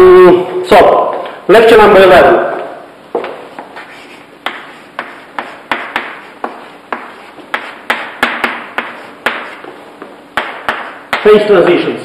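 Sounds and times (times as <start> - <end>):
chalk tapping and scratching on blackboard: 3.2 - 11.3.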